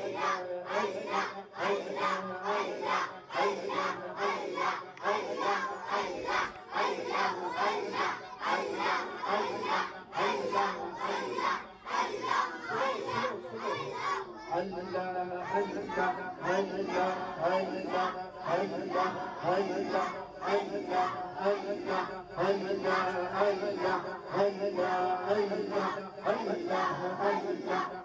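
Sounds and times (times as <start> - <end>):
crowd chanting: 0.0 - 28.0
man speaking into a microphone: 14.5 - 27.7.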